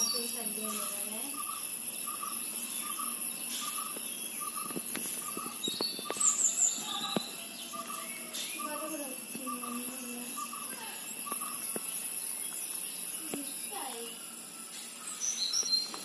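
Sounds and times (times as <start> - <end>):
high bird chirps: 0.0 - 16.0
high insect whine: 0.0 - 16.0.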